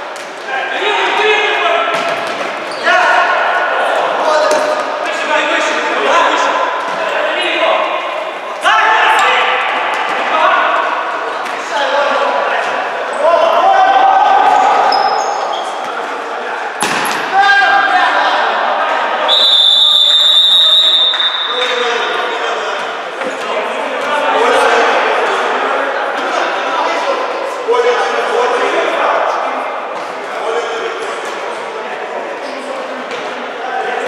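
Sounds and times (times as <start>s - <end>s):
players shouting in echoing hall: 0.0s - 34.0s.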